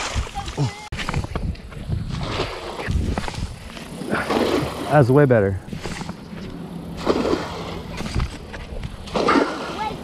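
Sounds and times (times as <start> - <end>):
outdoor background noise: 0.0 - 10.0
net splashing on water: 7.0 - 7.8, 9.1 - 9.9.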